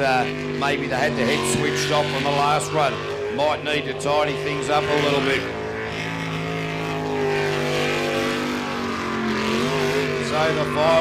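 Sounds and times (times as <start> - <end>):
boat engine at high revs: 0.0 - 11.0.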